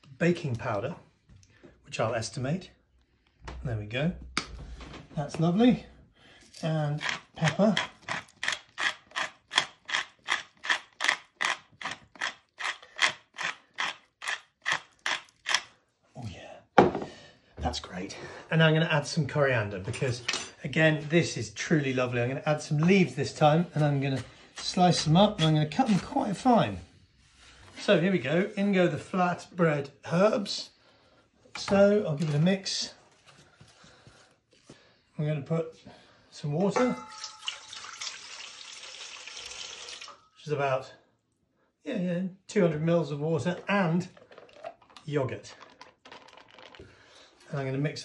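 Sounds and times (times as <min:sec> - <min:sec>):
pepper mill grinding: 0:07.0 - 0:15.6, 0:44.0 - 0:46.8.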